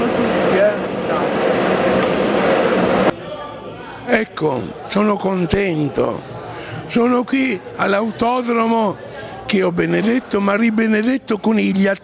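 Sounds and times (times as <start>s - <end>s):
people talking: 0.0s - 1.5s, 3.1s - 12.0s.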